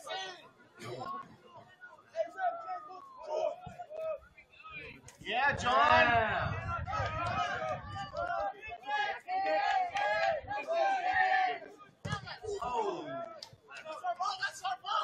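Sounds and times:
people shouting and calling: 0.0s - 15.0s.

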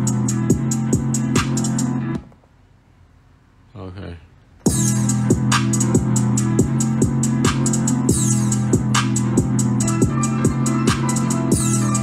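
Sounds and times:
hi-hat pattern: 0.0s - 2.2s, 4.6s - 12.0s
drum machine beat: 0.0s - 2.3s, 4.6s - 12.0s
held bass notes: 4.7s - 12.0s.

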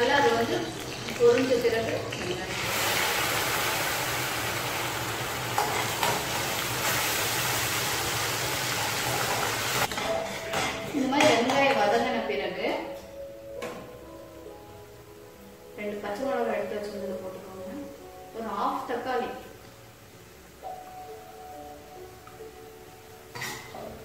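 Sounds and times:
hot oil sizzling: 0.0s - 10.7s.

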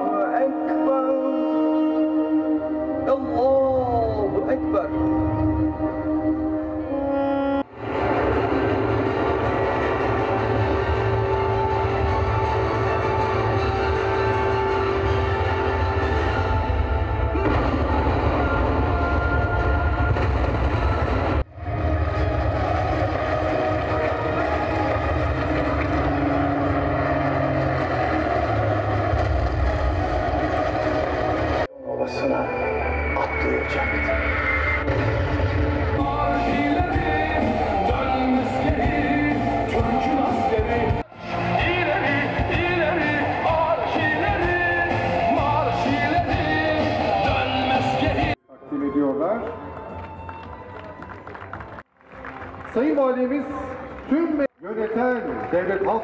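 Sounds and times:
loud live stage music: 34.2s - 48.4s.

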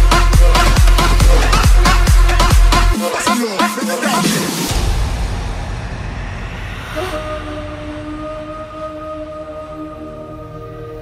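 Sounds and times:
deep bass rumble: 4.7s - 11.0s.

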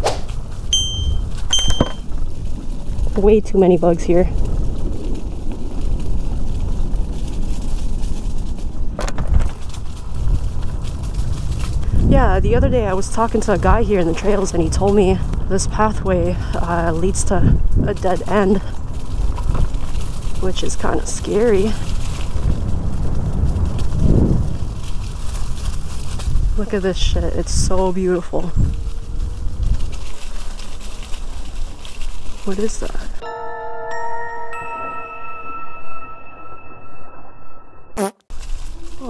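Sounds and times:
tyres over rough ground: 0.0s - 33.2s, 38.3s - 39.0s
wind buffeting microphone: 0.0s - 33.2s
scooter ride rumble: 0.0s - 33.3s.

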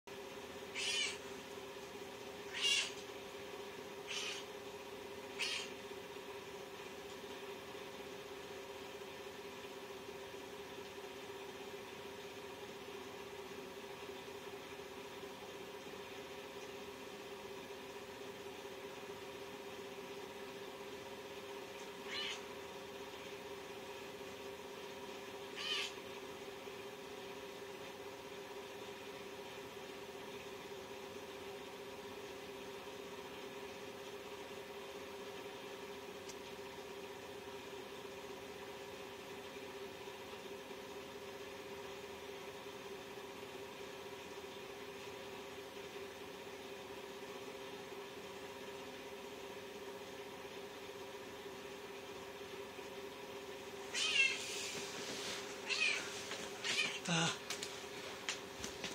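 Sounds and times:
steady low hum: 0.1s - 58.9s
cat meowing high-pitched: 0.8s - 1.2s, 2.5s - 3.0s, 4.1s - 4.4s, 5.4s - 5.7s, 22.1s - 22.4s, 25.6s - 26.0s, 53.9s - 54.5s, 55.6s - 57.4s.

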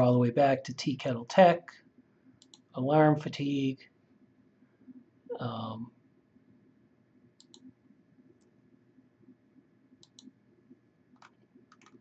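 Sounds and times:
computer mouse clicks: 2.4s - 2.7s, 7.4s - 7.7s, 10.0s - 10.4s, 11.1s - 12.0s.

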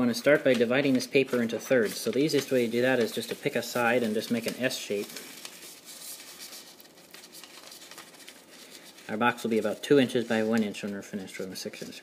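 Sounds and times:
paper rustling and crinkling: 0.2s - 12.0s.

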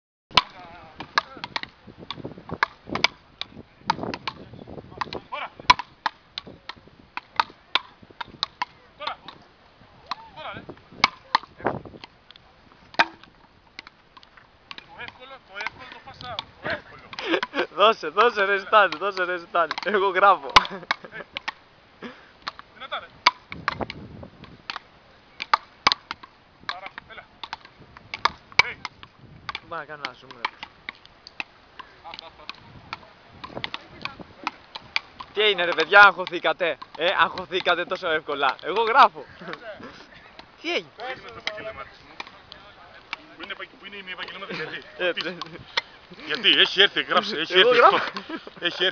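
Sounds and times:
wooden paddles striking ball: 0.4s - 21.6s, 22.4s - 39.7s, 40.3s - 48.9s.

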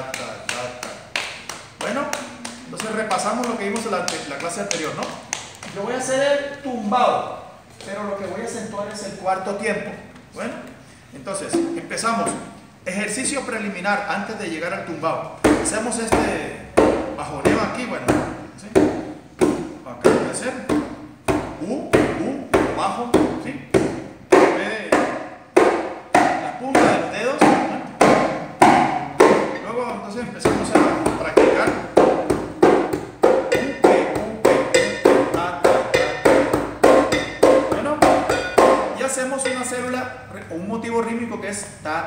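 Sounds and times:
conga played with hands: 0.0s - 5.8s, 11.4s - 12.6s, 15.4s - 40.0s.

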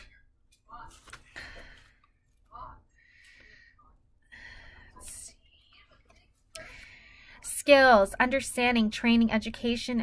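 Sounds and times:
woman breathing: 1.2s - 7.5s
woman whispering: 4.8s - 6.7s.

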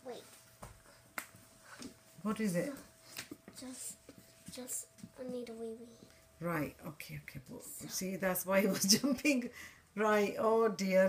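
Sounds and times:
woman speaking: 2.2s - 2.9s, 6.4s - 11.0s.

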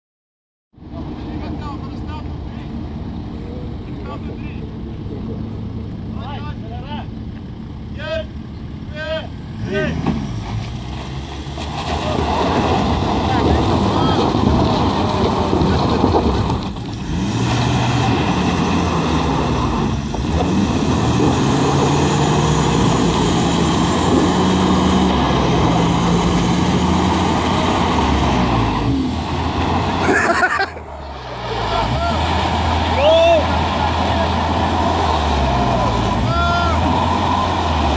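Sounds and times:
vehicle engines idling: 0.8s - 37.9s
tyres spinning on loose dirt: 10.4s - 30.6s, 31.2s - 37.9s.

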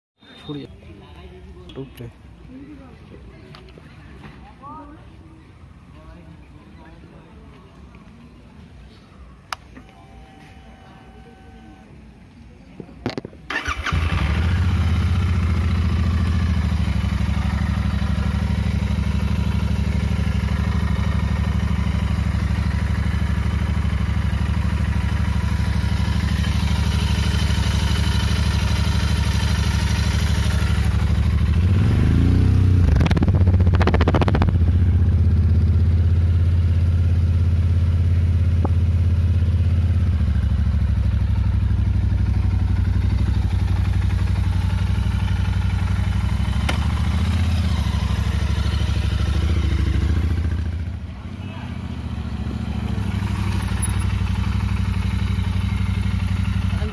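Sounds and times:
motorcycle engine idling: 13.5s - 56.9s.

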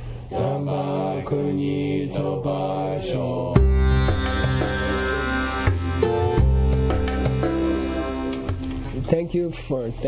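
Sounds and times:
voices chanting a prayer: 0.3s - 3.6s
instrumental music with deep bass: 3.6s - 9.1s.

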